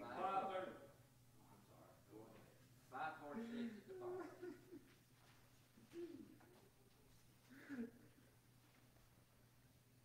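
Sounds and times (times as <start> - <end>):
faint person murmuring: 5.8 - 8.2.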